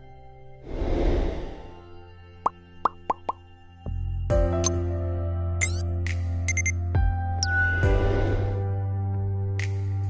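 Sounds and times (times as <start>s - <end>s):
background music: 0.0s - 10.0s
pop sound effects: 2.4s - 3.4s.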